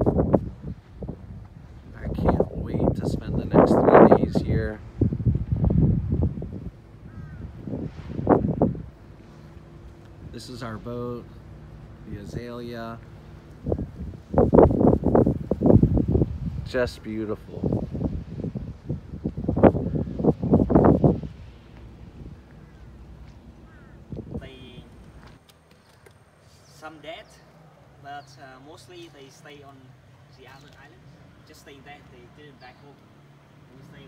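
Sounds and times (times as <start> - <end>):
wind gusting on microphone: 0.0 - 25.4.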